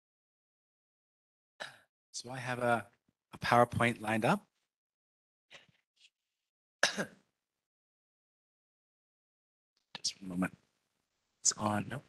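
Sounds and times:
person clearing throat: 0:06.8 - 0:07.2.

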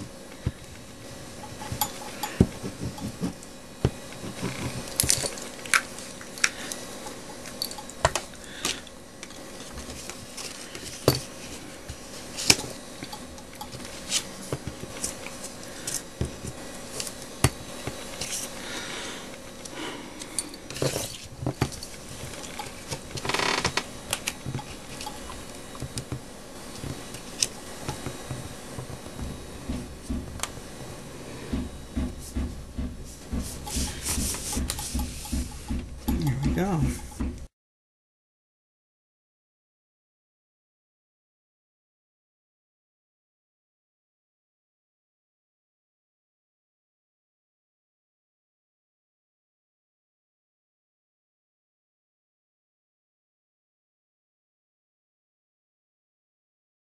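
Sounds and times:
paper tapping and rustling: 0:31.5 - 0:37.5.

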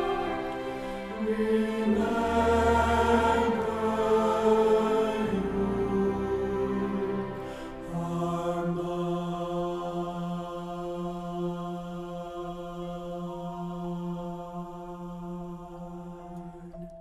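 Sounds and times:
choir holding soft note: 0:00.0 - 0:17.0.

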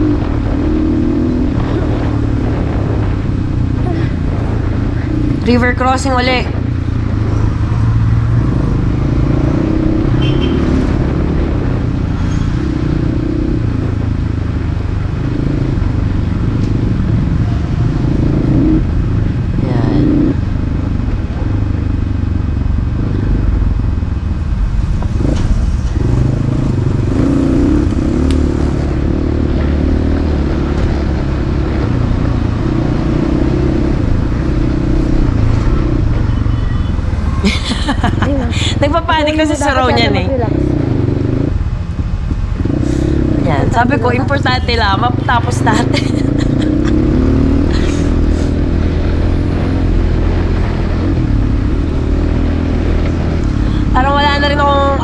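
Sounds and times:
dirt bike engine revving: 0:00.0 - 0:14.0, 0:15.0 - 0:21.9, 0:25.1 - 0:55.0.

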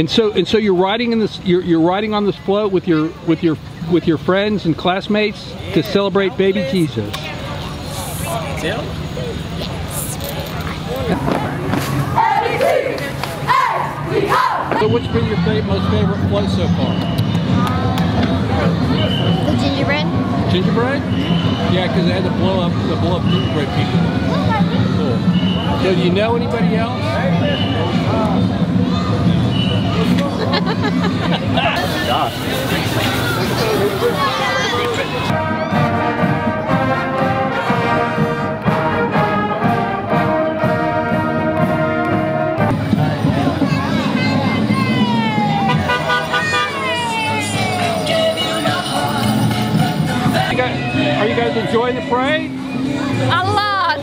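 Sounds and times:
crowd chattering: 0:00.0 - 0:54.0
marching band playing: 0:18.4 - 0:54.0.

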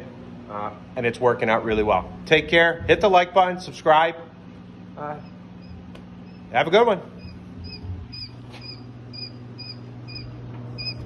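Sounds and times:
steady low hum: 0:00.0 - 0:11.0
quail chicks peeping: 0:07.2 - 0:11.0.

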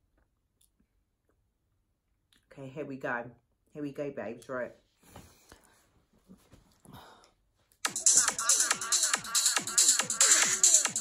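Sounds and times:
soft rustles of handling: 0:04.7 - 0:07.8.

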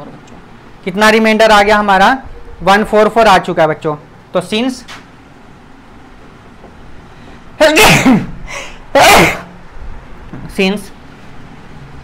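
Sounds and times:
man sneezing: 0:07.6 - 0:09.6.

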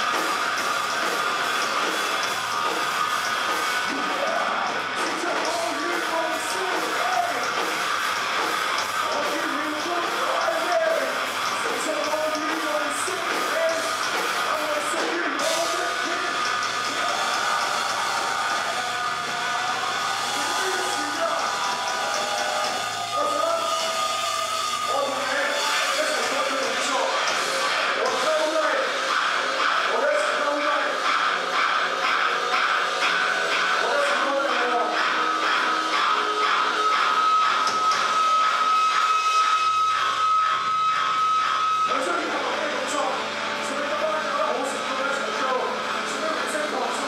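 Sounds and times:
distorted guitar and amplifier noise: 0:00.0 - 0:47.0
rock band playing live: 0:00.0 - 0:47.0.

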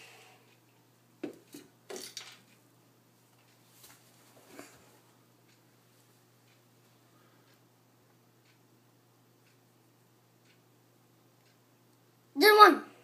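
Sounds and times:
tableware clinking and knocking: 0:01.9 - 0:02.4.

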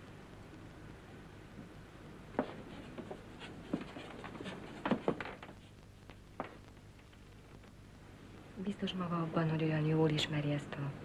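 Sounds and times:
scratchy taps and rubs: 0:02.3 - 0:07.2.

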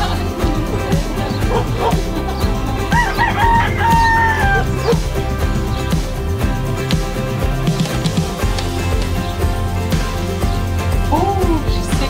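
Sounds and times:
background music: 0:00.0 - 0:12.0
rooster crowing: 0:02.9 - 0:05.0.

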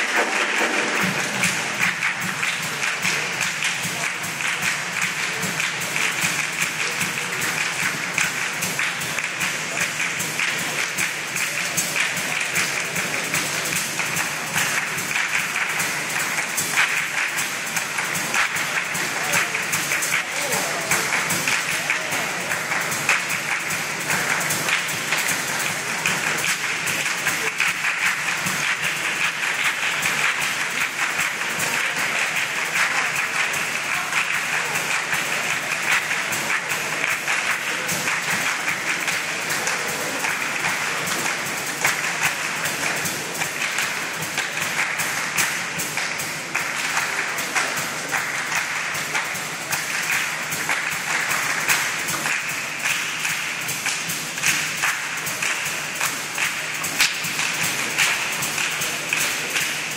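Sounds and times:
rhythmic handclapping: 0:00.0 - 0:59.9.

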